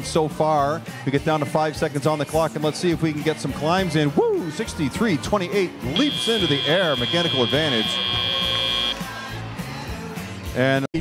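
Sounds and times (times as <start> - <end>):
background music: 0.0 - 11.0
arena buzzer high tone: 5.9 - 9.2.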